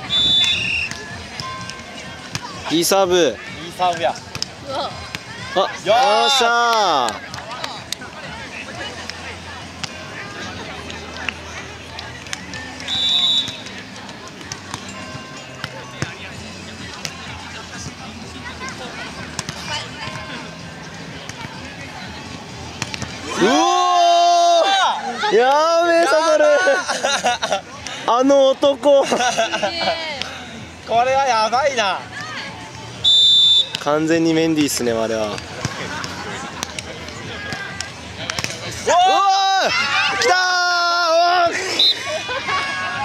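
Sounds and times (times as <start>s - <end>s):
people shouting: 4.6s - 7.0s, 23.2s - 26.8s, 38.8s - 43.0s
voices: 34.7s - 43.0s
hands slapping a volleyball: 35.3s - 38.6s.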